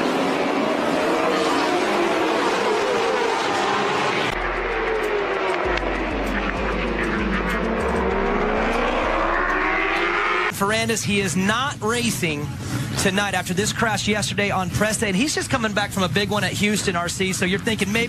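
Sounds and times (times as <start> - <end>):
racing motorcycles passing: 0.0 - 10.8.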